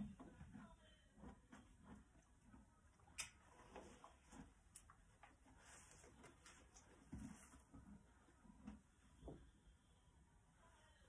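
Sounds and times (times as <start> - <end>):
horse chewing: 0.0 - 9.2.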